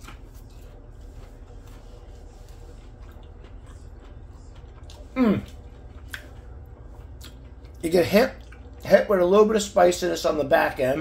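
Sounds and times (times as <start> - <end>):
person chewing crunchy food: 0.0 - 9.2
low steady hum: 0.0 - 11.0.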